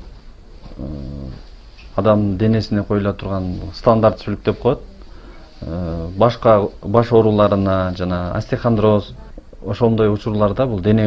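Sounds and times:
man saying uh: 0.8 - 1.4, 5.6 - 11.0.

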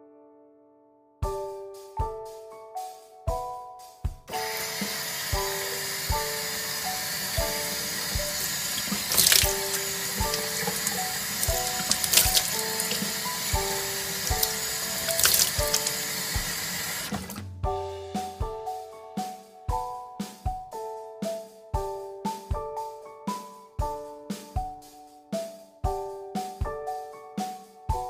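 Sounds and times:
background music with piano: 0.0 - 28.0
sink tap running: 4.3 - 17.4
water splashing on face: 7.2 - 17.4.

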